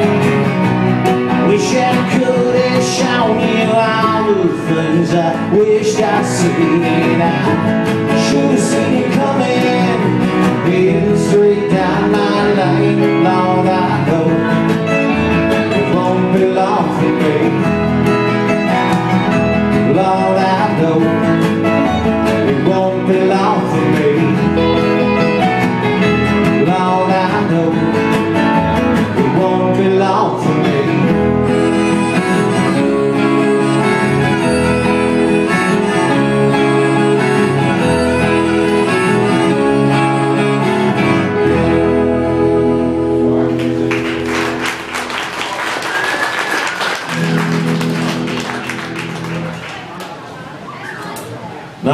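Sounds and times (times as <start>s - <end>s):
string band playing: 0.0s - 49.9s
people clapping: 43.5s - 50.5s.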